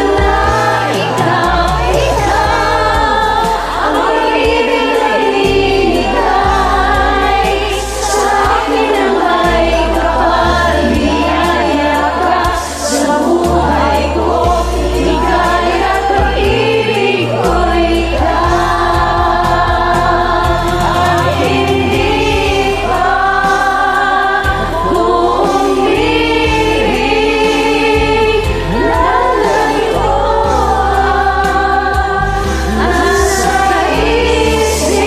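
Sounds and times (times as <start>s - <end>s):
choir singing in harmony: 0.0s - 35.0s
low bass accompaniment: 0.0s - 35.0s.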